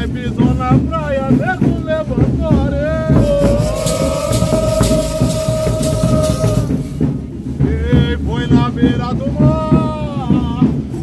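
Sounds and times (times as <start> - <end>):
man singing: 0.0 - 10.8
drum beats: 0.1 - 11.0
rattling percussion: 3.1 - 7.7.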